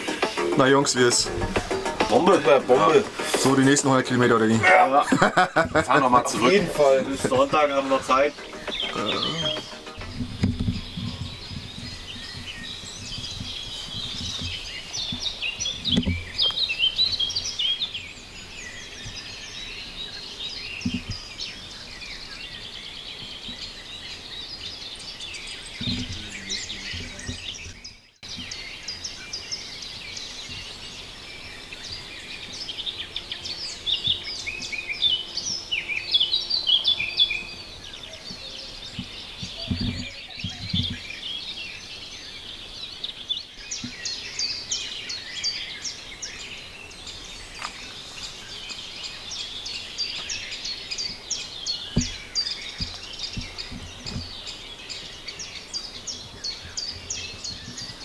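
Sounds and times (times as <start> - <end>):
low thumps: 0.0 - 4.3, 5.1 - 16.5, 25.7 - 27.8, 51.9 - 54.4
songbirds chirping and singing: 0.0 - 58.0.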